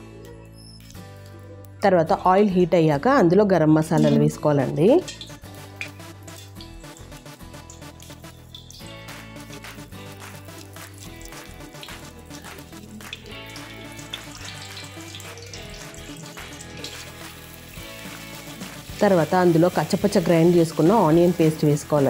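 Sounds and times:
background music: 0.0s - 22.0s
spices sizzling in hot oil: 4.0s - 22.0s.

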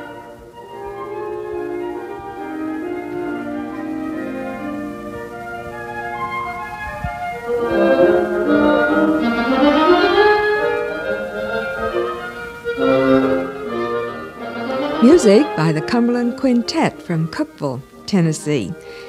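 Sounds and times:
woodwind quintet playing: 0.0s - 19.0s.

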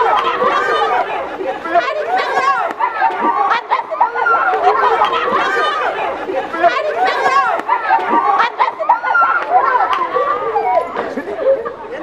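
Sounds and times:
people shouting and chattering: 0.0s - 12.0s.

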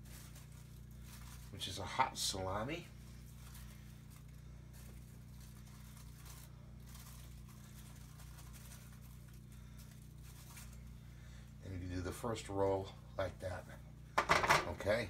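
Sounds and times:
faint rustles and handling: 0.0s - 13.8s
low electrical hum: 0.0s - 15.0s.

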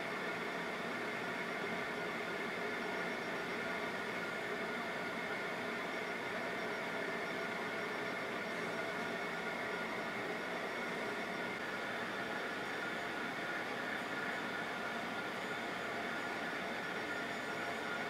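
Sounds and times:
motorized turntable whirring hum: 0.0s - 18.0s.

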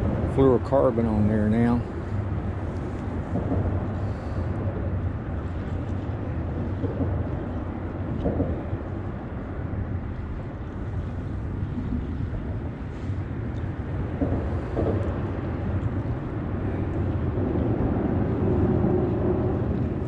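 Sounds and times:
wind buffeting microphone: 0.0s - 20.0s.

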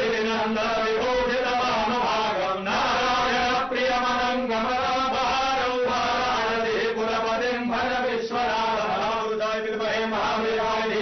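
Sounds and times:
priests chanting: 0.0s - 11.0s.

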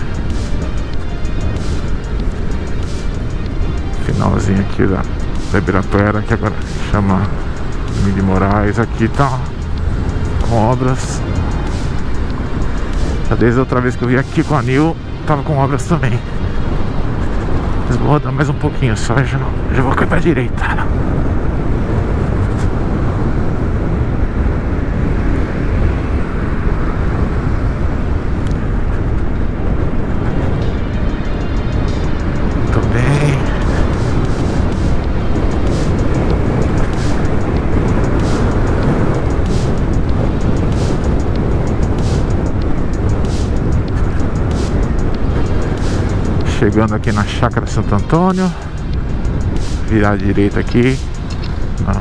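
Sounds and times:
faint music with steady beat: 0.0s - 52.0s
tyre and road noise: 0.0s - 52.0s
wind rush on microphone: 0.0s - 52.0s.

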